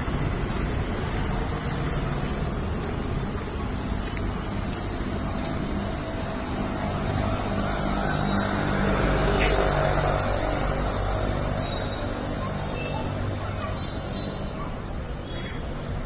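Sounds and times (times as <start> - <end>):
vehicle engine running: 0.0 - 14.7
street traffic noise: 0.0 - 16.0.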